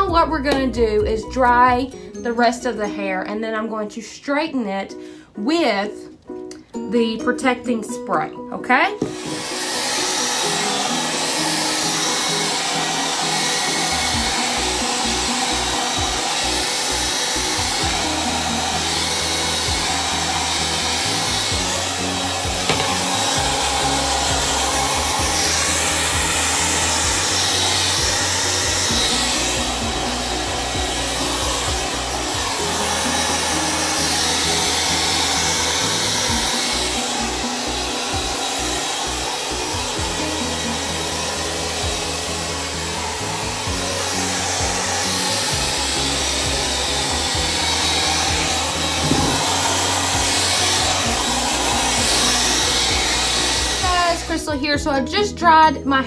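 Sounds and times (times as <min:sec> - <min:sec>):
hair dryer blowing: 0:00.0 - 0:02.2, 0:07.4 - 0:55.4
background music: 0:00.0 - 0:56.0.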